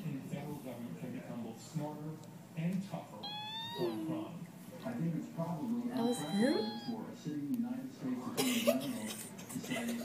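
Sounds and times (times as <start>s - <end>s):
high-pitched mewing squeak: 3.2s - 4.2s, 6.0s - 7.0s.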